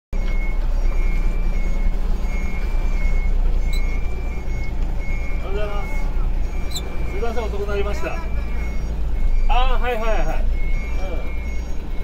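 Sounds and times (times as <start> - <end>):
diesel engine low rumble: 0.2 - 12.0
reverse alarm beeping: 0.2 - 12.0.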